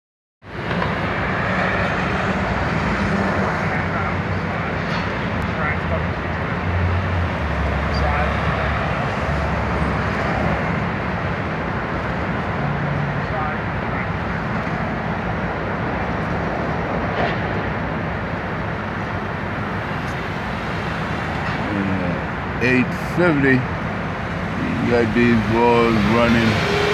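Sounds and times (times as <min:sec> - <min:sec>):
traffic noise: 0:00.4 - 0:26.9
low engine rumble: 0:13.2 - 0:26.9
indistinct voices: 0:21.4 - 0:23.7, 0:24.3 - 0:26.9.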